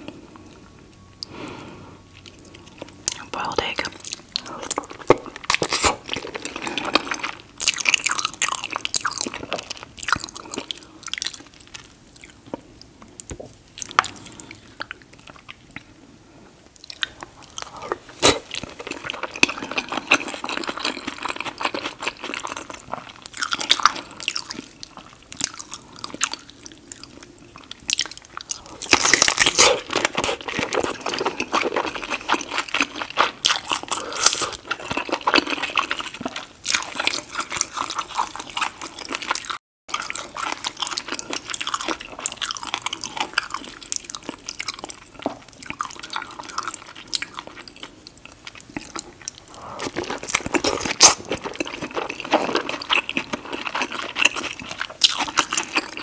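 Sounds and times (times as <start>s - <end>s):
wet chewing and biting: 4.0s - 15.9s, 16.7s - 56.0s.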